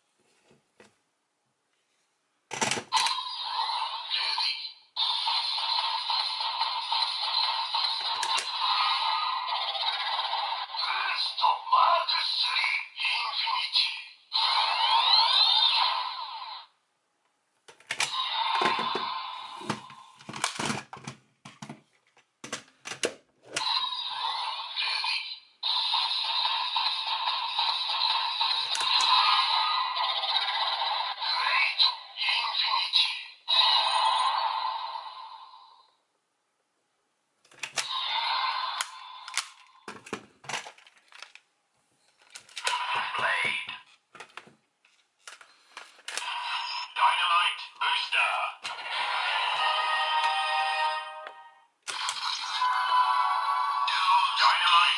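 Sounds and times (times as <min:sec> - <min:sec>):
toy sound effects and music: 0:02.9 - 0:16.7, 0:18.0 - 0:20.1, 0:23.6 - 0:35.8, 0:37.7 - 0:39.9, 0:42.4 - 0:43.8, 0:46.0 - 0:54.9
toy electronic voice calls: 0:03.0 - 0:16.7, 0:23.6 - 0:35.4, 0:42.6 - 0:43.8, 0:46.2 - 0:51.2, 0:51.9 - 0:54.9.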